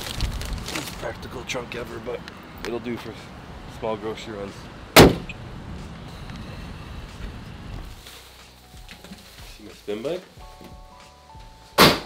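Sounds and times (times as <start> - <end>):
trunk lid slamming shut: 5.0 - 5.3, 11.8 - 12.0
low rumble: 5.2 - 8.0.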